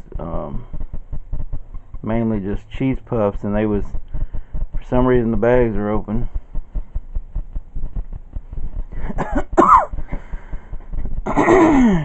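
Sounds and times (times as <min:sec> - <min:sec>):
man coughing: 0:09.0 - 0:10.0, 0:11.2 - 0:12.0.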